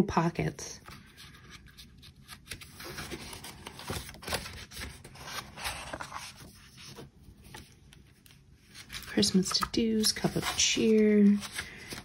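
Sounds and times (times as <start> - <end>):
paper rustling and scraping: 0.8 - 12.0.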